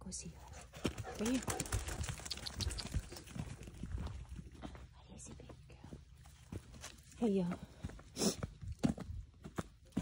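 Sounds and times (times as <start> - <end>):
footsteps crunching on gravel: 0.8 - 10.0.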